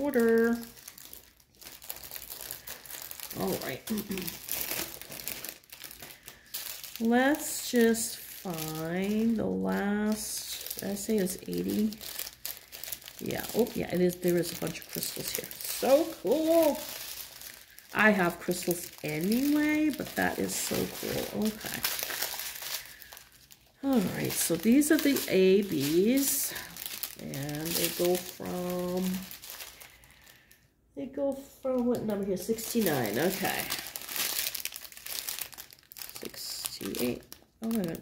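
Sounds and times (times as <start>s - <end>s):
woman speaking: 0.0s - 0.8s, 3.3s - 4.4s, 7.0s - 12.1s, 13.2s - 17.0s, 17.9s - 22.2s, 23.8s - 29.3s, 31.0s - 33.9s, 36.1s - 38.0s
plastic packets crinkling: 0.0s - 38.0s.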